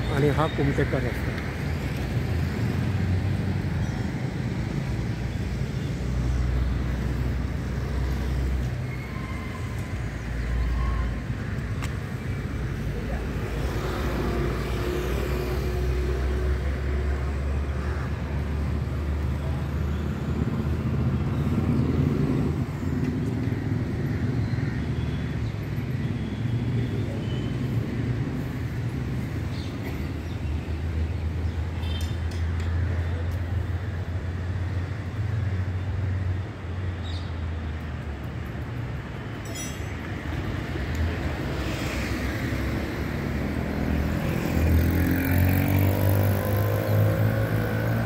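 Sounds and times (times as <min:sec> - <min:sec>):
road traffic rumble: 0:00.0 - 0:48.0.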